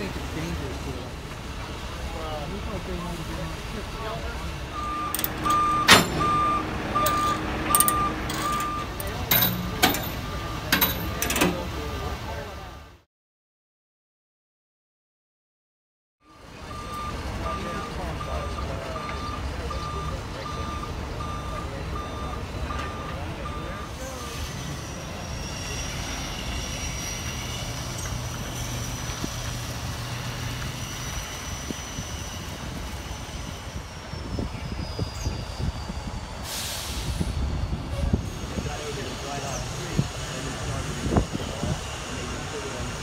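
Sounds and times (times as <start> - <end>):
diesel truck engine running: 0.0 - 13.0, 16.3 - 25.0
backup alarm beeping: 4.7 - 12.1, 16.7 - 24.0.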